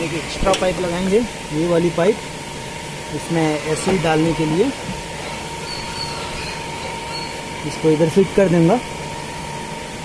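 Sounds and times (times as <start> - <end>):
mechanical hum with thin whine: 0.0 - 10.0
faint high chirps: 5.6 - 7.5.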